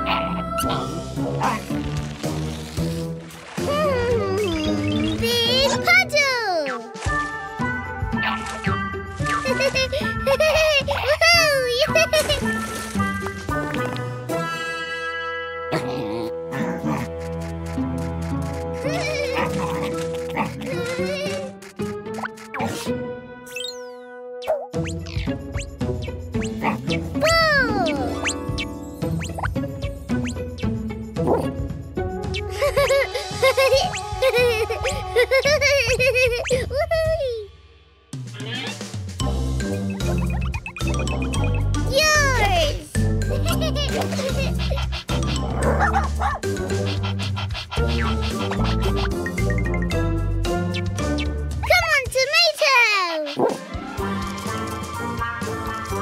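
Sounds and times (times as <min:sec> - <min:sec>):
cartoon background music: 0:00.0 - 0:56.0
cartoon puppy whining: 0:32.6 - 0:35.5, 0:43.9 - 0:49.3.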